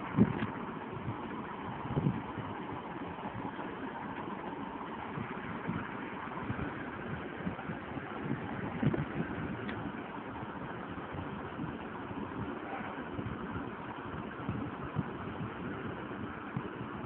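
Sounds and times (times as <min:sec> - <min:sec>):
background hum: 0:00.0 - 0:17.0.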